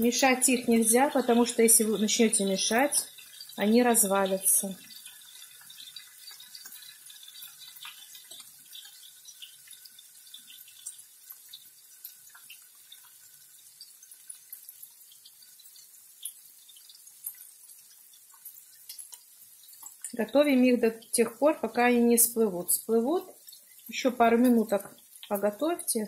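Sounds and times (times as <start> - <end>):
fat frying in a pan: 0.0 - 26.0
water boiling in a pot: 0.0 - 26.0.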